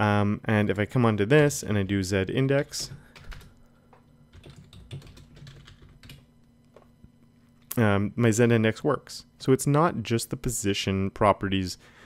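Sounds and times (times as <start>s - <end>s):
faint keyboard typing: 2.6s - 6.9s.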